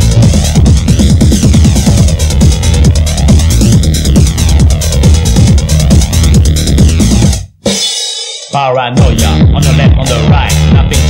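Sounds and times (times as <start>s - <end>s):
techno dance track: 0.0s - 7.5s, 8.4s - 11.0s.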